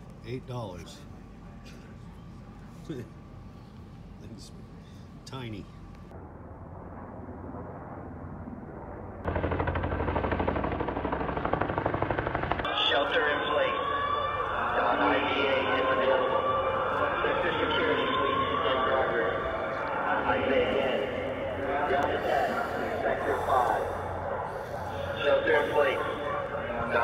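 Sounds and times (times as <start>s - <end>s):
low background haze: 0.0s - 27.0s
wailing tones: 12.7s - 27.0s.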